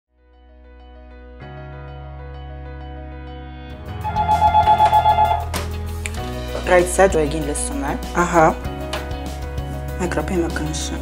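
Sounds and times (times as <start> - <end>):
phone ringing in two-tone warble: 4.0 - 5.5.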